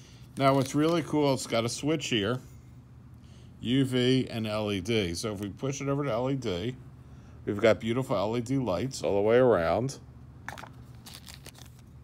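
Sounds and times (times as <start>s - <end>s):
plastic bag crinkling: 0.4s - 1.2s, 10.5s - 12.0s.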